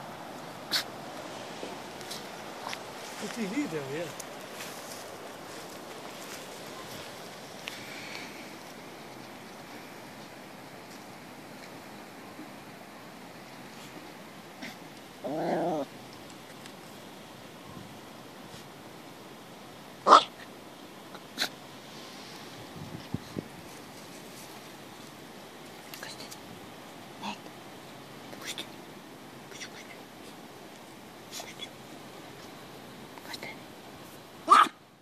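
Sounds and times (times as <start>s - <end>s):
steady background hiss: 0.0s - 35.0s
short breathy puffs: 7.6s - 8.7s.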